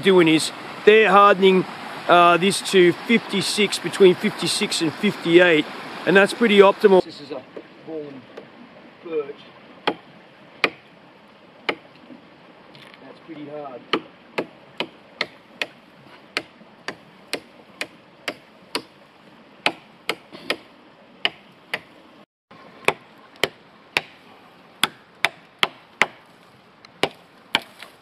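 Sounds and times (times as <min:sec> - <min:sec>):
knife chopping into wood: 0:09.8 - 0:10.0, 0:10.6 - 0:10.8, 0:13.9 - 0:18.9, 0:19.7 - 0:20.7, 0:22.9 - 0:24.2, 0:24.8 - 0:26.2, 0:27.0 - 0:28.0.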